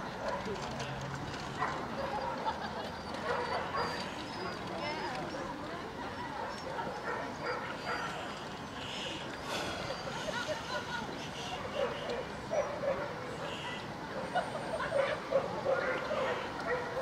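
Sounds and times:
indistinct chatter of people: 0.0 - 17.0
dogs barking: 1.6 - 4.6, 6.3 - 8.3, 11.7 - 13.5, 14.1 - 17.0.

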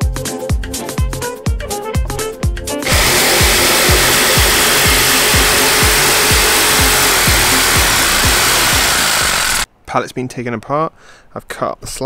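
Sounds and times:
electric jigsaw cutting wood: 2.8 - 9.7.

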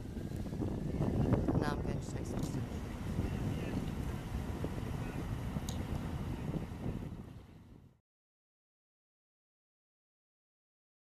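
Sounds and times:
boat motor wash: 0.0 - 7.9
wind rumbling on microphone: 0.0 - 8.0.

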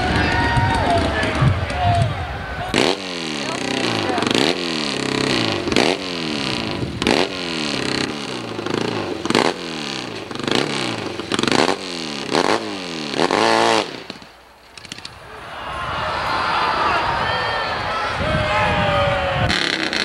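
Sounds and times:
motorcycle engine revving: 0.0 - 14.3, 19.4 - 20.0.

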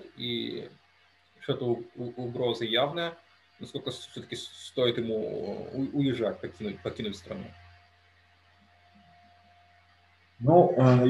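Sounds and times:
thin faint tone: 0.0 - 0.7, 1.4 - 7.6
low steady hum: 0.0 - 11.0.

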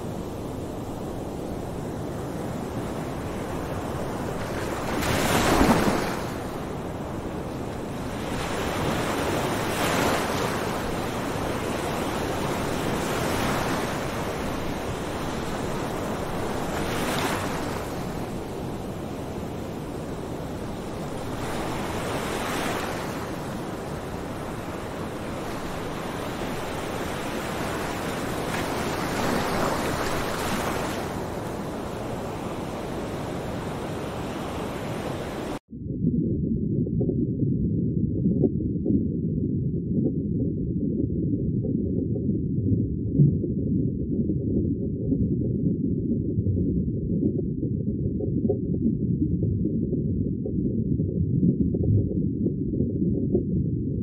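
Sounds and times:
surf breaking on beach: 4.7 - 6.6.

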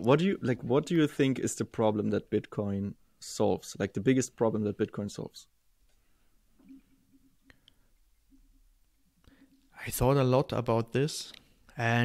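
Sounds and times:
man speaking: 0.0 - 5.5, 9.8 - 12.0.

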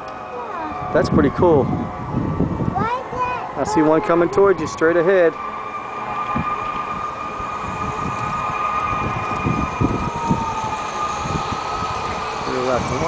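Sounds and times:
low rumble: 0.0 - 13.0
model train whine: 3.5 - 13.0.

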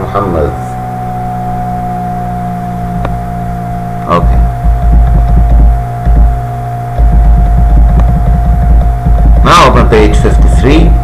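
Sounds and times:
low electrical hum: 0.0 - 11.0
thin high tone: 0.0 - 11.0
person speaking: 4.0 - 5.6, 7.1 - 11.0.

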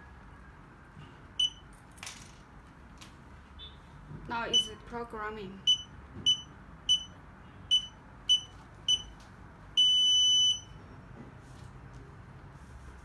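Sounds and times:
electronic buzzer beeps: 5.6 - 9.1, 9.8 - 10.7.

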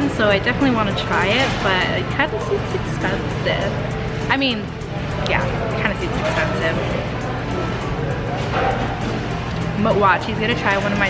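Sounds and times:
background chatter: 0.0 - 11.0
background music: 0.0 - 11.0.

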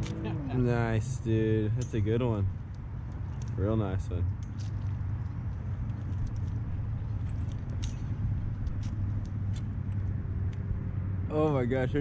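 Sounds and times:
light clicks and rustles: 1.7 - 10.8.

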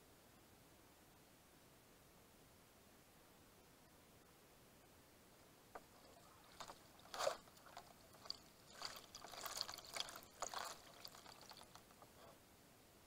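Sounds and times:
paddle splashing water: 5.8 - 12.0.

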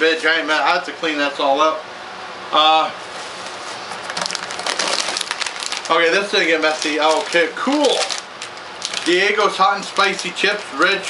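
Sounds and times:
plastic chip bag crinkling: 4.1 - 11.0.

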